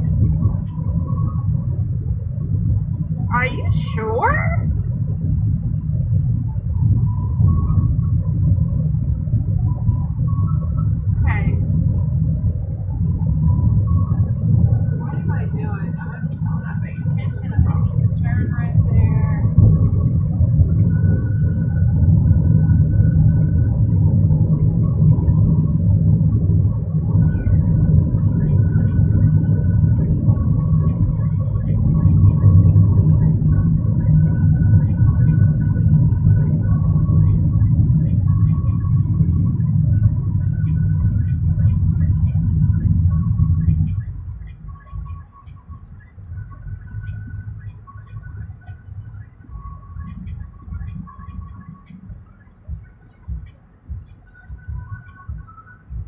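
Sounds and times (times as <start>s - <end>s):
car cabin rumble: 0.0s - 56.0s.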